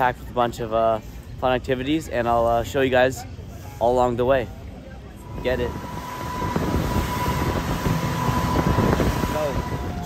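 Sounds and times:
speedboat engine: 0:05.1 - 0:10.0
wind and water rushing: 0:05.2 - 0:10.0.

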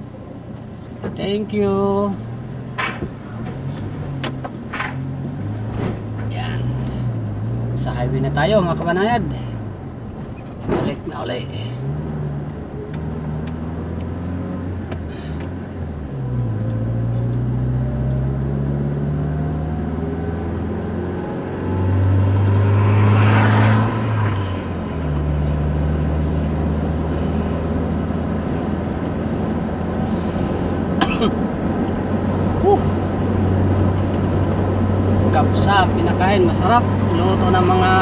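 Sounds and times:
car engine: 0:00.0 - 0:38.0.

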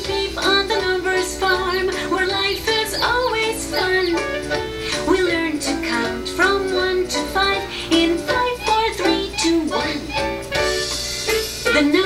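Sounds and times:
high voice singing: 0:00.0 - 0:10.4
light instrumental backing: 0:00.0 - 0:12.0.

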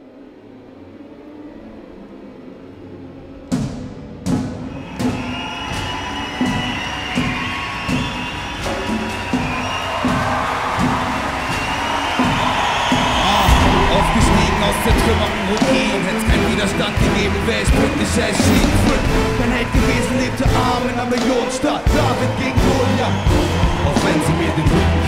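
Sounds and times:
heavy drum hits: 0:03.5 - 0:25.0
orchestral music: 0:04.0 - 0:25.0.

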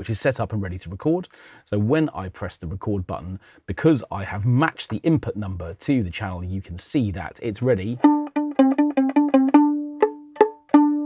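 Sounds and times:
violin pizzicato plucks: 0:07.9 - 0:11.0.

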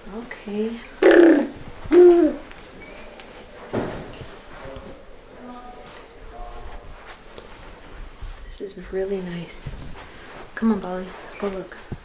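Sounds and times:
hoot-like vocal calls: 0:01.0 - 0:02.5.

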